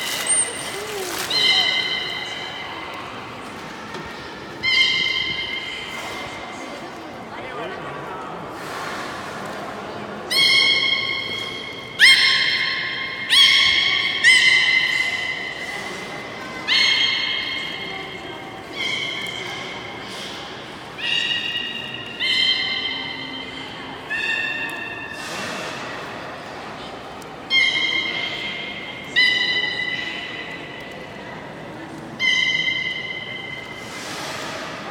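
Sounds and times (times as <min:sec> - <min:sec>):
beluga whale high-pitched calls: 0:04.6 - 0:06.1, 0:10.3 - 0:18.1, 0:21.0 - 0:25.8, 0:27.5 - 0:30.5, 0:32.2 - 0:34.4.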